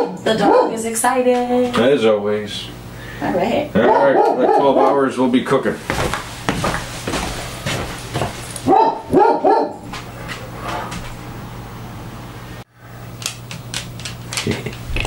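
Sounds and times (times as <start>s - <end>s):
dog barking: 0.0s - 0.9s, 3.8s - 5.0s, 8.6s - 10.6s.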